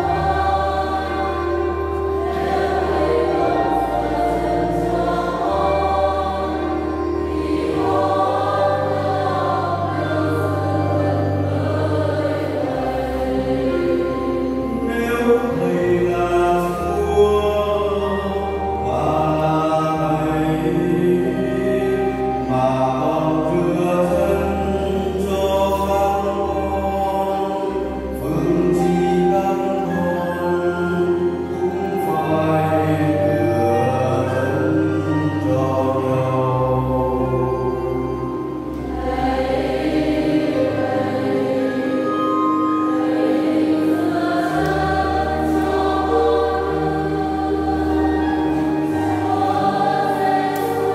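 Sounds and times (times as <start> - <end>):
slow hymn: 0.0 - 50.9
sustained low accompaniment: 0.0 - 50.9.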